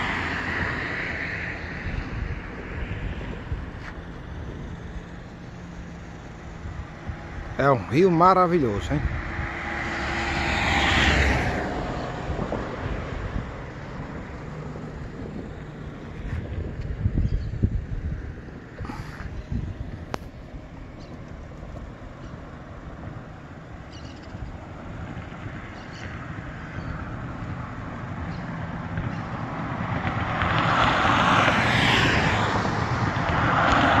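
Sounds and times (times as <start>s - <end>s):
cars passing on highway: 0.0s - 34.0s
road noise: 0.0s - 34.0s
wind rumble on microphone: 0.0s - 34.0s.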